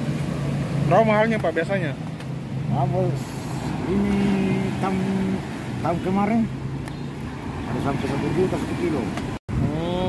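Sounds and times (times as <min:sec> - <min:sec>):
engine hum: 0:00.0 - 0:10.0.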